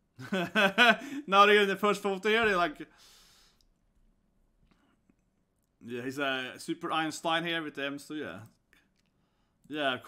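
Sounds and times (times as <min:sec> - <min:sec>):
man speaking: 0:01.2 - 0:02.9, 0:05.8 - 0:08.6, 0:09.7 - 0:10.0.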